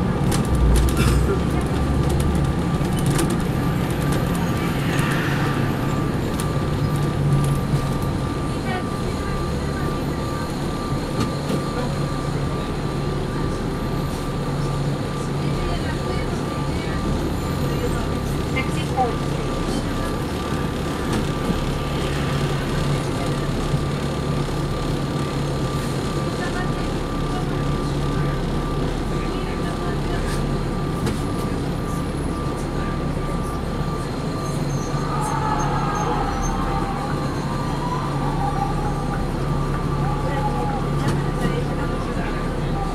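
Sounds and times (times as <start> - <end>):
bus engine hum: 0.0 - 42.9.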